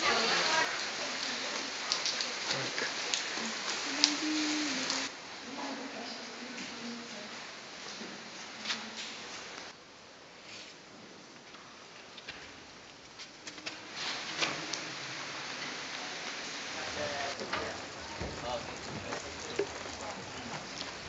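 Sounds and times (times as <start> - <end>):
rain falling: 0.0 - 9.8, 12.4 - 21.0.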